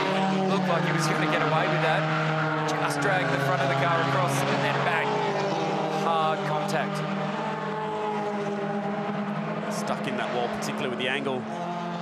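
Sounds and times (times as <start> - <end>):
race car engines running: 0.0 - 12.0.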